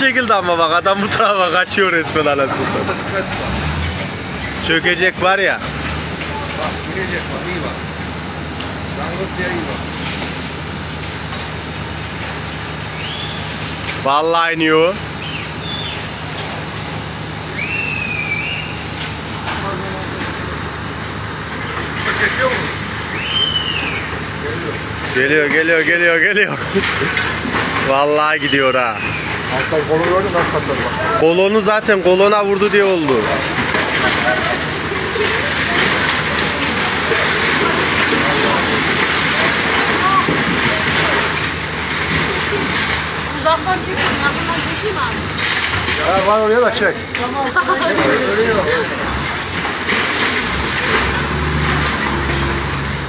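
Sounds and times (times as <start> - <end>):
engine hum: 0.0 - 53.0
street noise: 0.0 - 53.0
indistinct voices: 12.8 - 53.0
concrete rubble crumbling and falling: 33.0 - 53.0.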